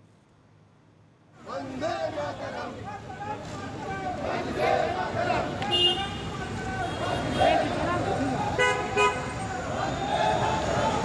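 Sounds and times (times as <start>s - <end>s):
road traffic: 0.0s - 11.0s
people talking on street: 0.4s - 11.0s
vehicle horn honks: 5.7s - 7.5s.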